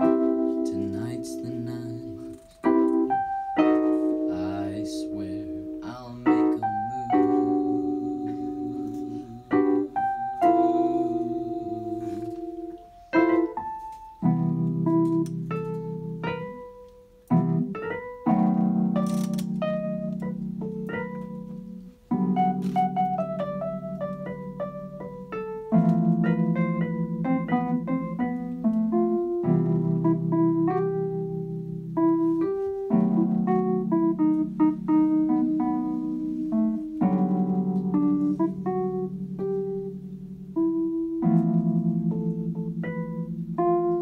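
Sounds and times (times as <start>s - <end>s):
electronic keyboard piano chords: 0.0s - 44.0s.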